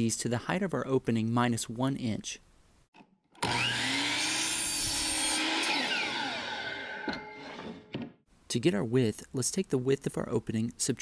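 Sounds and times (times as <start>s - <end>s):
miter saw cutting wood: 3.4s - 7.9s
saw blade spinning down: 3.4s - 7.9s.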